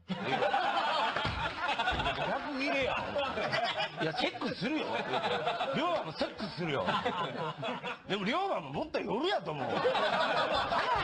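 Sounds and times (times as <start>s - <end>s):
people laughing: 0.0s - 11.0s
people speaking: 1.8s - 10.5s.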